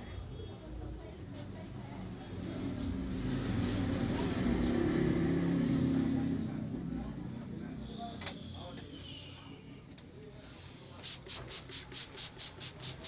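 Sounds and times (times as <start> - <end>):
vehicle engine passing by: 2.0 - 7.7.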